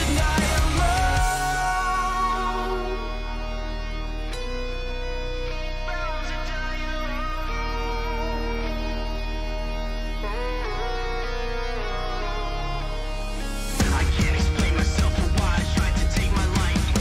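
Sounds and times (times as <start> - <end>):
electric guitar chords: 0.0 - 17.0
low bass: 0.0 - 17.0
rock music: 0.0 - 17.0.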